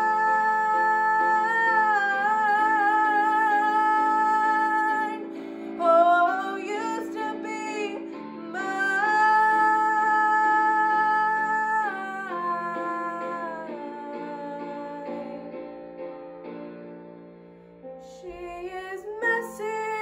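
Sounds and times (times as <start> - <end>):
woman singing: 0.0 - 15.7, 18.0 - 20.0
instrumental backing track: 0.0 - 20.0.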